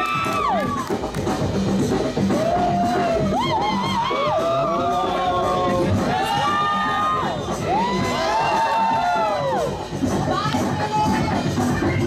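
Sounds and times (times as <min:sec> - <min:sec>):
crowd cheering and shouting: 0:00.0 - 0:01.1, 0:02.1 - 0:12.0
break music: 0:00.0 - 0:12.0.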